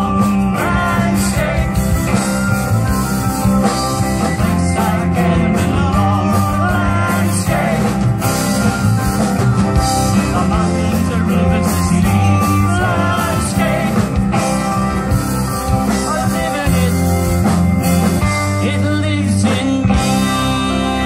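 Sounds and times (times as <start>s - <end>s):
folk-rock band with guitar: 0.0s - 21.0s.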